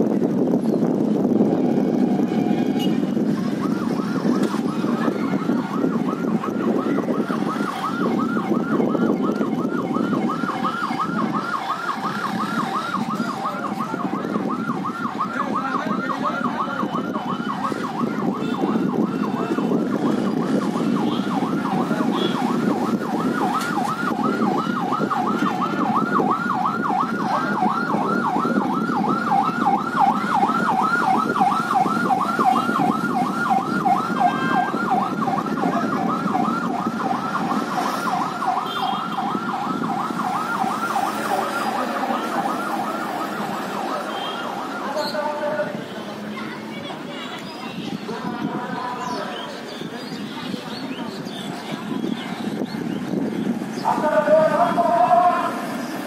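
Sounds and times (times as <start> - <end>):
street noise hum: 0.0 - 56.0
siren yelping: 1.5 - 45.9.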